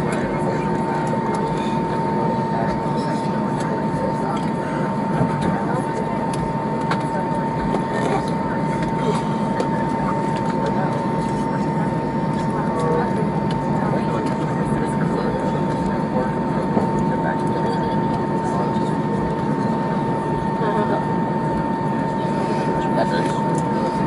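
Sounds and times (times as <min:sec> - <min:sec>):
jet engines idling: 0:00.0 - 0:24.0
murmur of passenger voices: 0:00.0 - 0:24.0
steady high whine: 0:00.0 - 0:24.0.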